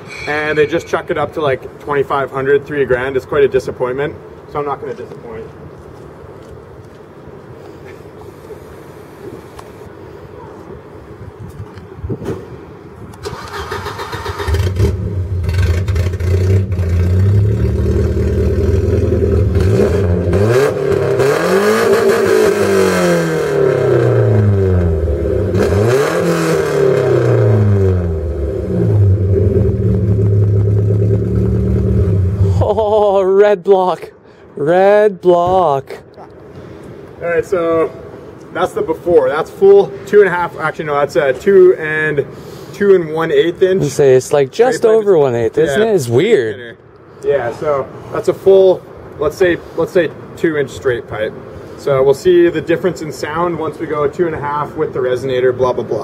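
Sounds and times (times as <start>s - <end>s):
engine cranking: 13.2s - 17.4s
engine revving: 13.2s - 32.6s.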